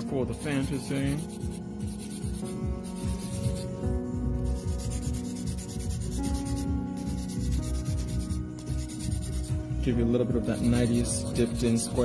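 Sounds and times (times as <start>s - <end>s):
nail file rubbing on nail: 0.4s - 3.8s, 4.4s - 9.5s, 10.4s - 12.0s.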